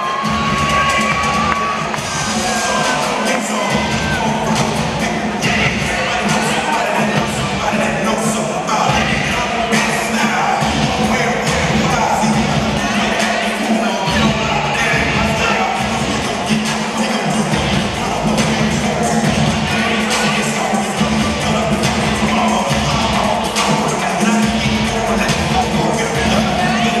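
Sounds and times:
crowd cheering: 0:00.0 - 0:27.0
loud music over sound system: 0:00.0 - 0:27.0.

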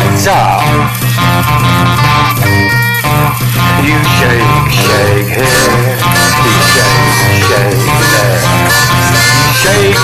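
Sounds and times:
bass line: 0:00.0 - 0:10.0
blues guitar: 0:00.0 - 0:10.0.

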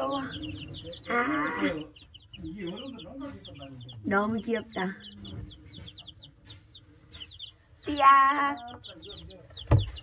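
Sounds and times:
baby chicks peeping: 0:00.0 - 0:10.0.

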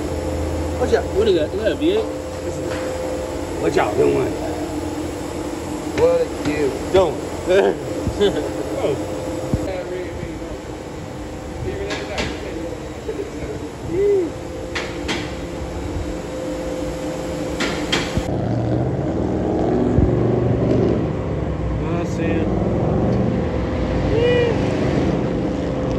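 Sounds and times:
road traffic rumble: 0:00.0 - 0:25.9
wind on microphone: 0:18.1 - 0:21.0.

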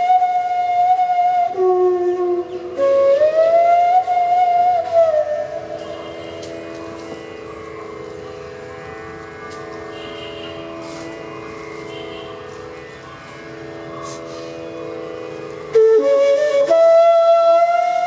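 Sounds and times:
drone of held notes: 0:01.6 - 0:18.0.

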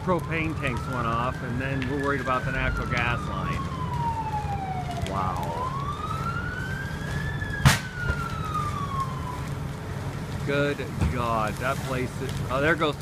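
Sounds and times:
emergency vehicle siren wailing: 0:00.0 - 0:13.0
sharp bang: 0:07.6 - 0:08.0.

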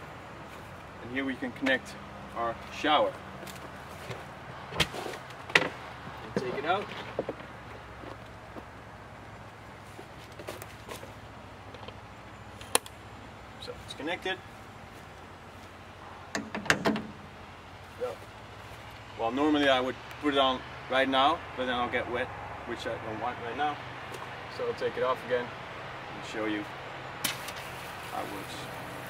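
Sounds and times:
hardware clicks and knocks: 0:16.3 - 0:17.3.

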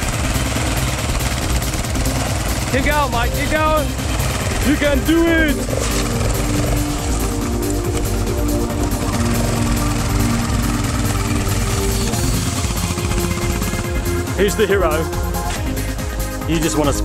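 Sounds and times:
background music: 0:00.0 - 0:17.0
motorcycle engine at high throttle: 0:00.0 - 0:17.0.

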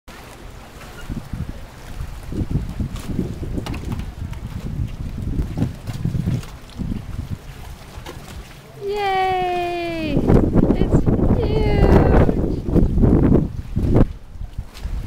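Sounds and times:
wind buffeting microphone: 0:00.4 - 0:15.0.

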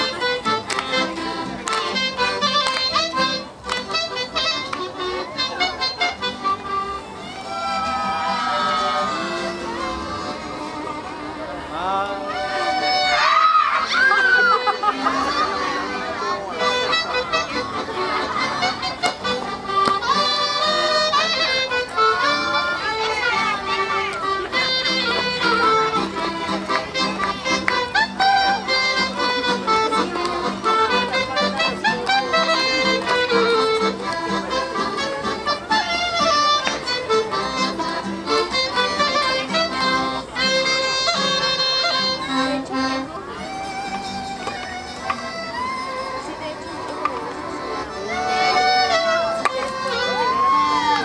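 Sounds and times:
old dance music: 0:00.0 - 0:13.2, 0:13.8 - 0:51.0
accordion: 0:00.0 - 0:51.0
violin: 0:00.0 - 0:51.0.

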